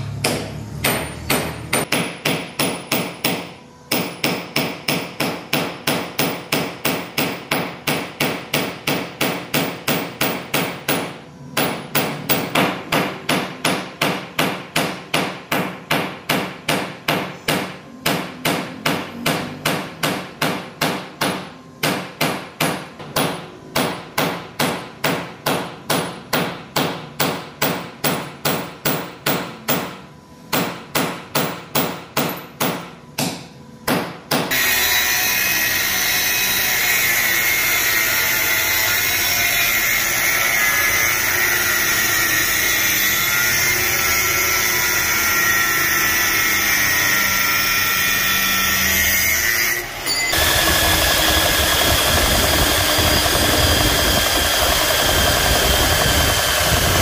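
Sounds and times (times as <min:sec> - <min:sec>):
hammer striking hot metal: 0:00.1 - 0:48.1.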